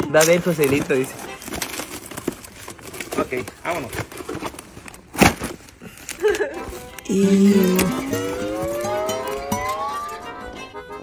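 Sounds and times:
cardboard crackles: 0.1s - 8.4s.

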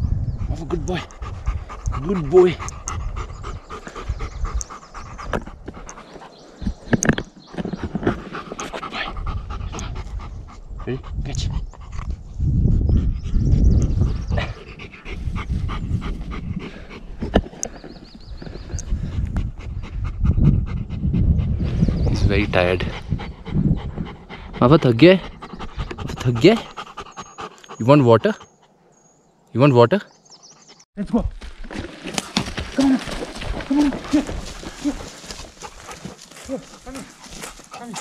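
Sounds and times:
dog panting: 0.4s - 6.7s, 7.6s - 28.8s, 33.8s - 38.0s
low rumble on microphone: 9.2s - 17.3s, 18.2s - 26.3s.

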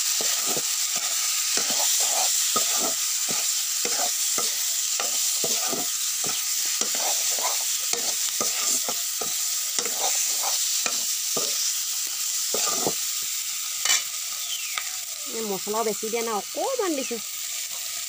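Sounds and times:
food sizzling in a pan: 0.0s - 18.0s
metal spatula scraping a pan: 0.1s - 11.8s, 12.4s - 13.0s, 13.8s - 14.2s.

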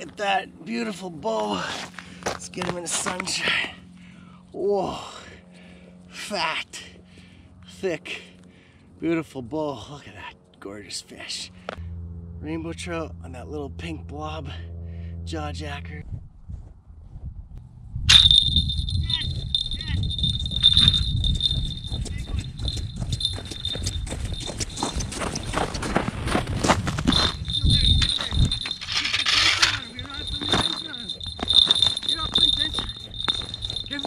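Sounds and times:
wind buffeting microphone: 16.0s - 34.0s
high-pitched ringing tone: 18.1s - 26.1s, 27.0s - 34.0s.

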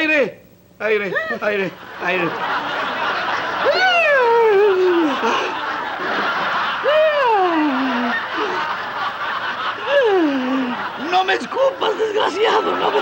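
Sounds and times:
audience laughter: 1.8s - 13.0s
man crying out: 3.6s - 5.4s, 6.8s - 8.1s.

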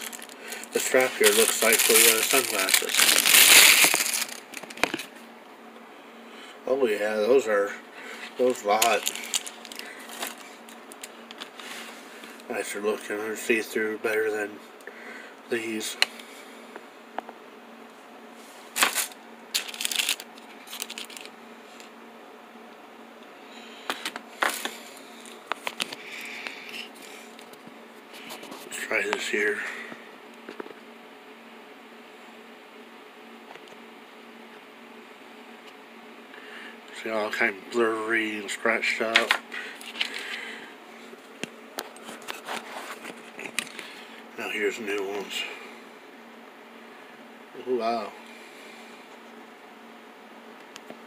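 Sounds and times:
plastic bags crinkling: 0.0s - 5.1s, 8.5s - 11.6s, 18.8s - 21.3s
steady low hum: 0.0s - 51.0s.

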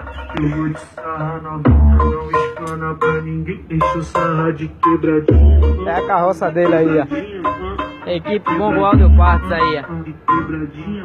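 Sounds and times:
funk music through car speaker: 0.0s - 11.0s
man singing over beat: 0.2s - 11.0s
heavy deep bass hit: 1.6s - 2.4s, 5.0s - 6.0s, 8.8s - 9.6s.

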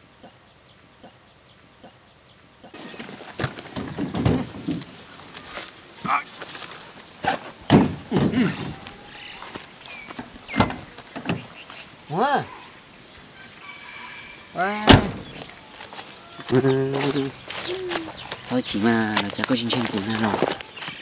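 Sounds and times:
clicks and knocks on truck body: 3.3s - 5.4s, 7.2s - 8.9s, 10.1s - 11.5s
short squeals: 7.2s - 12.8s.

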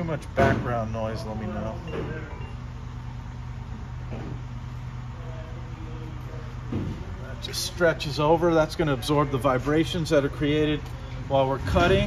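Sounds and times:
low shop hum: 0.0s - 12.0s.

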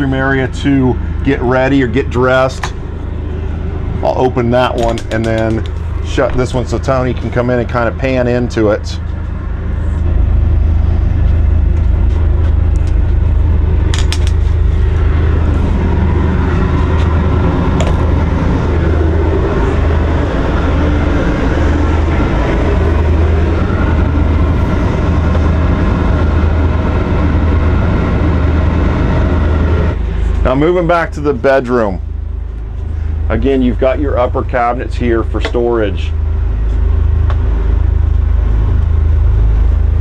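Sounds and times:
low mechanical rumble: 0.0s - 40.0s.

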